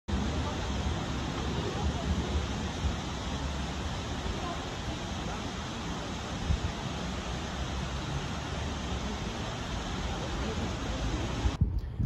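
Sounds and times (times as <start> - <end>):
wind buffeting microphone: 0.1 - 8.0, 8.7 - 12.0.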